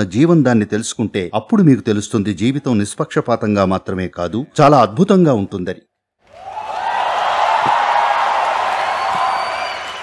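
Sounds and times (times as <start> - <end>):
audience applauding and cheering: 6.2 - 10.0.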